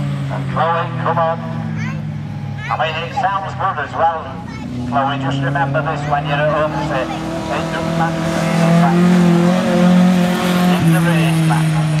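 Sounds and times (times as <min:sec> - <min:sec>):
racing car engine passing: 0:00.0 - 0:12.0.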